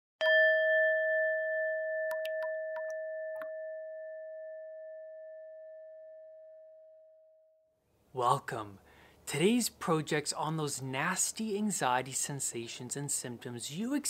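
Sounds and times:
bell-like chime ringing: 0.2 - 7.5.

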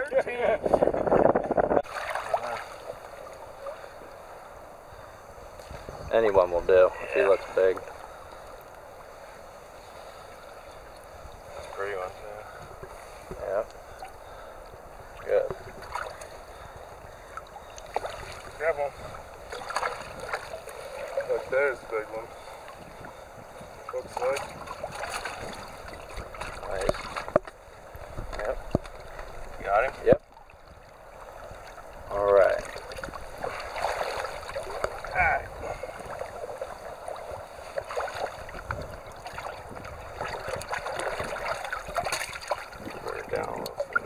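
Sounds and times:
water splashing and sloshing: 0.0 - 44.0
shallow stream rushing: 0.4 - 44.0
water splashing in a bucket: 1.2 - 3.0, 19.5 - 22.0, 23.9 - 27.6, 31.5 - 44.0.

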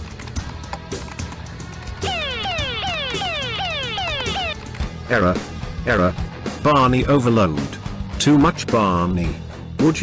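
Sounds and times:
electronic alarm falling tone: 2.0 - 4.6.

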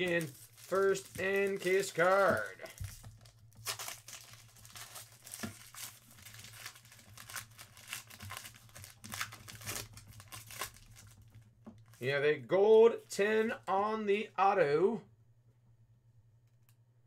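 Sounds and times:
foil wrapper crinkling: 0.0 - 12.1.

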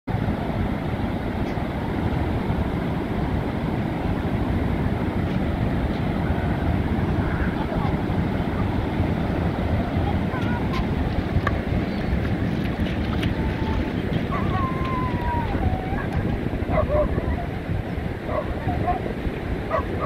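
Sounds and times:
ocean surf breaking: 0.1 - 20.0
wind rumbling on microphone: 0.1 - 20.0.

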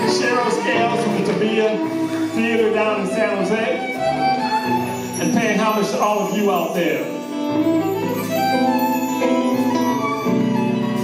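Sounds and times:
violin melody: 0.0 - 11.0.

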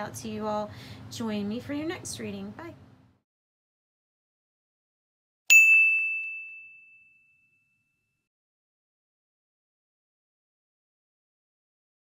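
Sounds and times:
high bell ding: 5.5 - 8.2.

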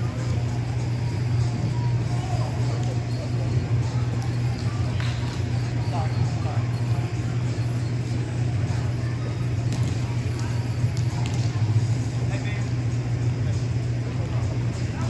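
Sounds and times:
distant chatter of voices: 0.0 - 15.0
steady low hum: 0.0 - 15.0.

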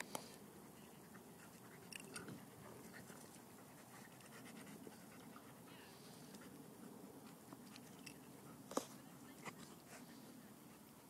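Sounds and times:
dogs panting: 0.4 - 11.0.

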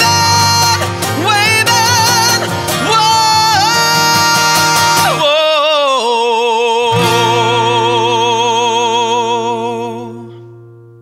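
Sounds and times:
man singing with vibrato: 0.0 - 10.6
acoustic guitar: 0.0 - 11.0.

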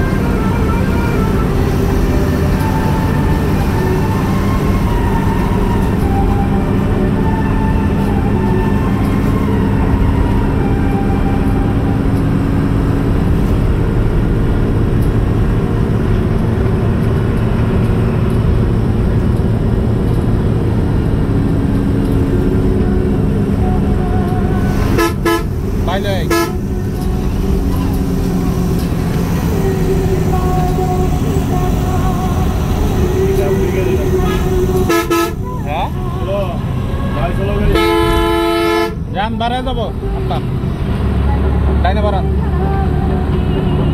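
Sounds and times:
vehicle engine droning: 0.0 - 43.9
horn blasts: 22.6 - 32.4, 33.0 - 39.2.

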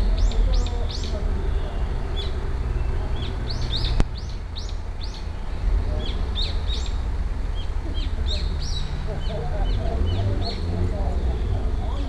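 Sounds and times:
small birds chirping: 0.0 - 12.0
steady low rumble: 0.0 - 12.0.

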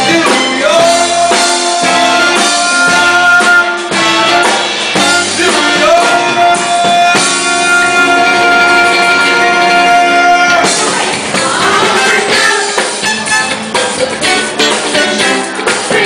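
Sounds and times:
man singing: 0.0 - 10.9
bass guitar: 0.0 - 16.0
drum kit: 0.0 - 16.0
electric guitar: 0.0 - 16.0.

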